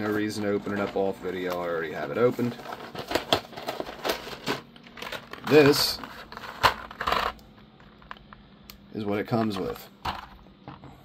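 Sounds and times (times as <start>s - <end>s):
crinkly plastic clatter: 0.0s - 8.3s.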